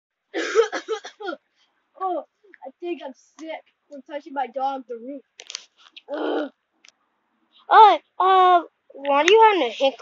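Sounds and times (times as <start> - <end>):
person coughing: 0.4 - 1.4.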